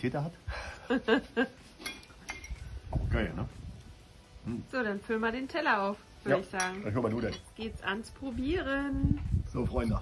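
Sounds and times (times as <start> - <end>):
metal fork clinks: 1.8 - 2.6, 9.7 - 10.0.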